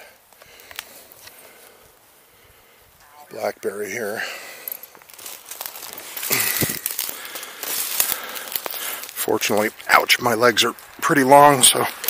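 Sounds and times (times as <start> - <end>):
twigs snapping and rustling underfoot: 0.3 - 2.1, 4.6 - 12.0.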